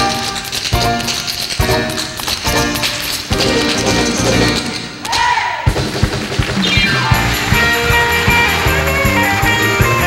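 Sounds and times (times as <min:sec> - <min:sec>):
tap shoes tapping on boards: 0:00.0 - 0:05.2
live band music: 0:05.7 - 0:10.0.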